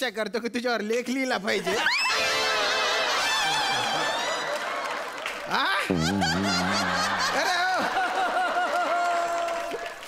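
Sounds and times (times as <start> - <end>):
people laughing heartily: 1.6 - 4.9, 5.8 - 9.6.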